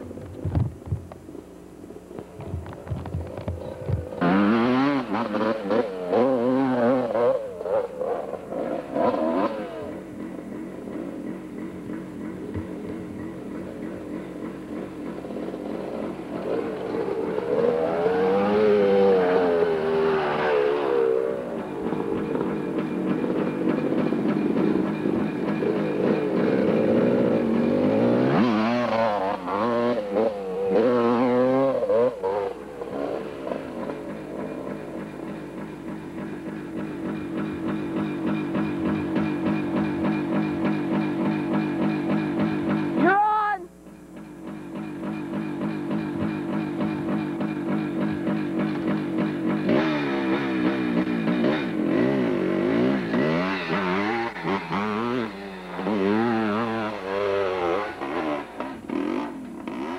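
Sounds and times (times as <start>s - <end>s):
dirt bike engine revving: 2.0s - 59.9s.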